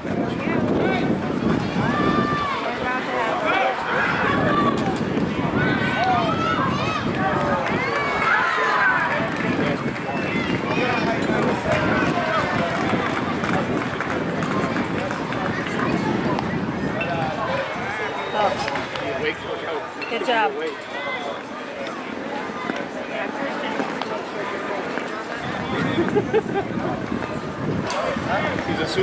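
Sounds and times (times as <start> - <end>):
people talking over one another: 0.0 - 29.0.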